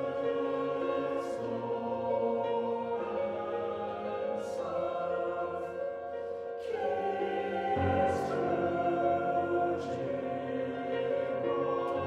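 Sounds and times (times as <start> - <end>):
choir singing sustained chords: 0.0 - 12.0
sung sibilant consonants: 0.0 - 12.0.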